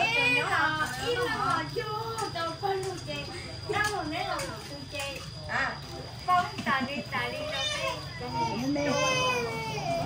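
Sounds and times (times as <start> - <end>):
people talking indoors: 0.0 - 10.0.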